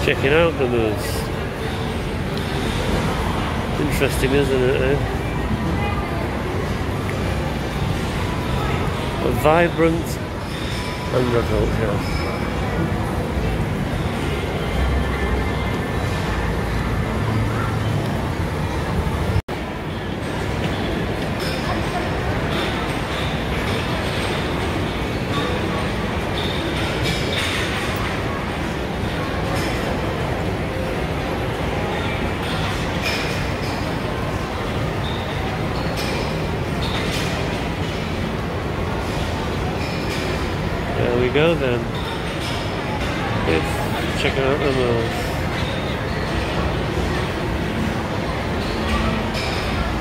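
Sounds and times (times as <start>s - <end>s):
shopping mall crowd rumble: 0.0s - 50.0s.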